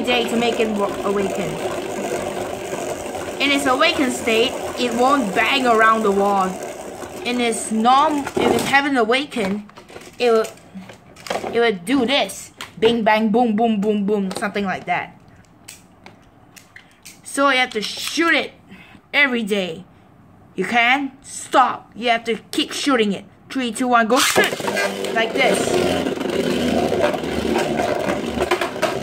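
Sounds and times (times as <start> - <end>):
spinning top whirring: 0.0 - 9.3, 24.2 - 29.0.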